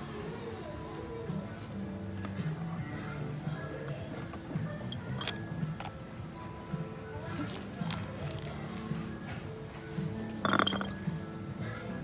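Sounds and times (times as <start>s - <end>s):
glass jar clinking: 4.9s - 5.4s, 10.4s - 11.2s.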